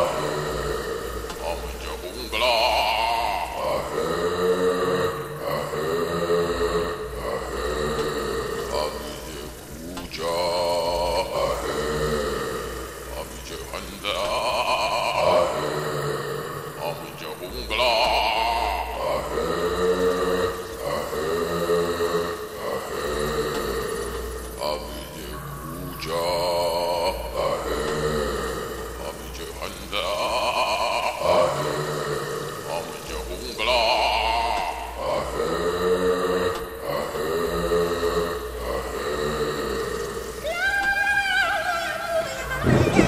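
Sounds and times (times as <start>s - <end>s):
man chanting long notes: 0.0s - 43.0s
steady low hum: 0.0s - 43.0s.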